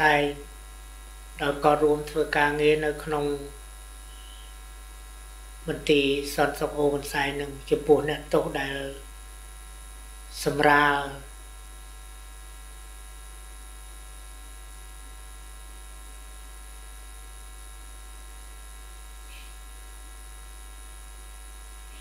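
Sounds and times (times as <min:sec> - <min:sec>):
electrical mains hum: 0:00.0 - 0:22.0.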